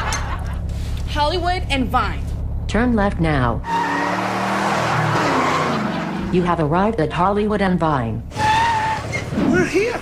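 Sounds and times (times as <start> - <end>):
car engine running: 0.0 - 8.4
tyres squealing: 8.3 - 10.0.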